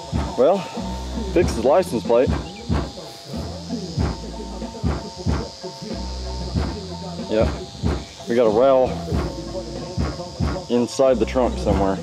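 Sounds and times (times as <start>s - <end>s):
bass-heavy music from car stereo: 0.0s - 12.0s.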